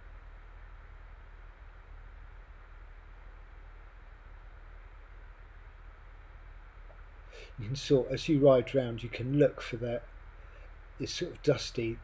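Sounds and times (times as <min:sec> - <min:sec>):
faint steady hiss: 0:00.0 - 0:12.0
low hum: 0:00.0 - 0:12.0.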